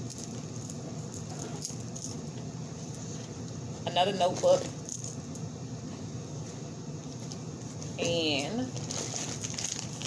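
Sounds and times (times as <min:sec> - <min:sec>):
small items rattling in bag: 0:08.5 - 0:10.0.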